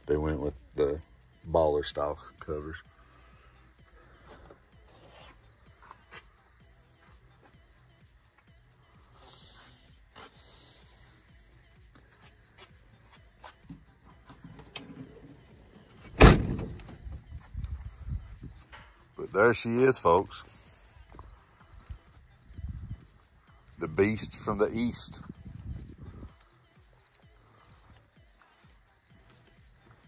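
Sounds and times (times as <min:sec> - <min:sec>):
cargo door slamming: 0:16.0 - 0:17.0.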